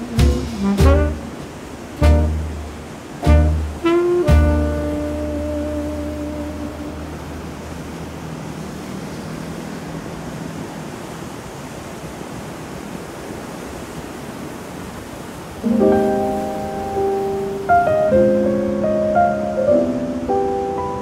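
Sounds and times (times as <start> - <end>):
music held notes: 0.0 - 7.4, 15.6 - 21.0
ocean surf washing onto beach: 0.0 - 21.0.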